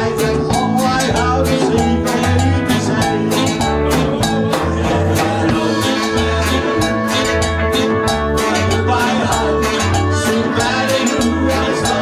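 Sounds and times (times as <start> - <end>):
bass notes: 0.0 - 12.0
drum kit beat: 0.0 - 12.0
electric guitars: 0.0 - 12.0
saxophones: 0.0 - 12.0.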